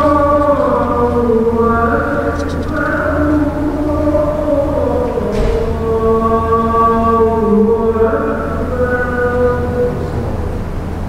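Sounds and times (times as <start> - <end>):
voice chanting long notes: 0.0 - 11.0.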